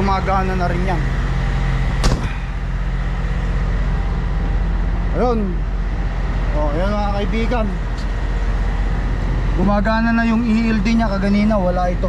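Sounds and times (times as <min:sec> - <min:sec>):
truck diesel engine idling: 0:00.0 - 0:12.0
sharp knock: 0:02.0 - 0:02.4.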